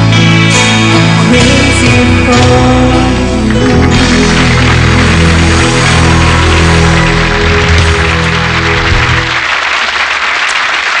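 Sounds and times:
music with heavy low beat: 0:00.0 - 0:09.4
studio audience applauding: 0:02.3 - 0:11.0.

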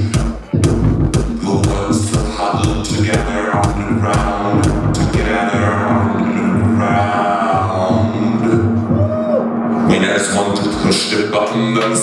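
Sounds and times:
kick drum: 0:00.0 - 0:05.4
hi-hat hits: 0:00.0 - 0:12.0
buzzy synth drone: 0:00.5 - 0:11.8.

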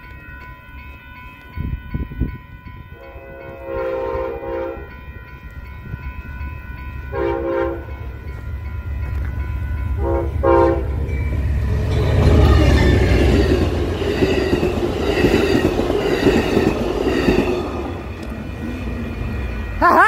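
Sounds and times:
train rumble: 0:00.0 - 0:20.0
train air horn blasts: 0:03.0 - 0:05.0, 0:07.1 - 0:07.9, 0:10.0 - 0:11.0.

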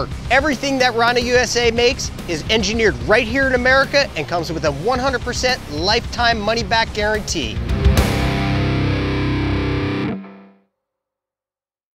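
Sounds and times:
distorted electric guitar chord: 0:07.6 - 0:10.6.

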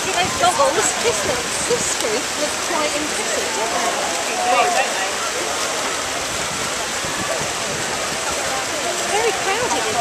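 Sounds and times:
swimmers splashing water: 0:00.0 - 0:10.0.

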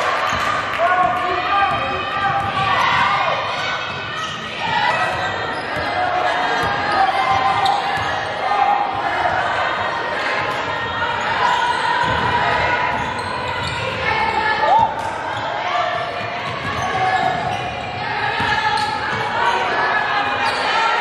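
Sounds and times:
echoing voices: 0:00.0 - 0:21.0.

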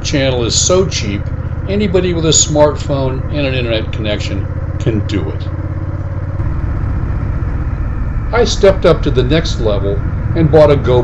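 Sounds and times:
motorcycle engine running: 0:00.0 - 0:11.0
wind and road rush: 0:05.5 - 0:11.0.

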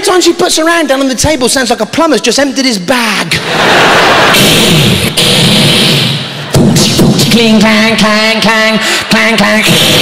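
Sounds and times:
man's voice: 0:00.0 - 0:03.5, 0:06.9 - 0:10.0
audience laughing loudly: 0:03.3 - 0:05.1.

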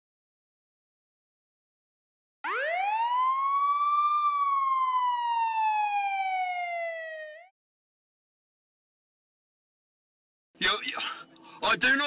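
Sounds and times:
police siren wail: 0:02.4 - 0:07.5.

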